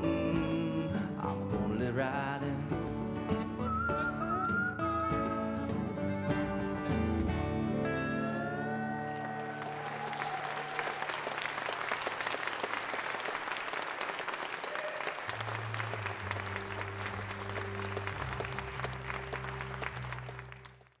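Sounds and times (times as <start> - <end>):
audience applauding: 8.4 - 21.0.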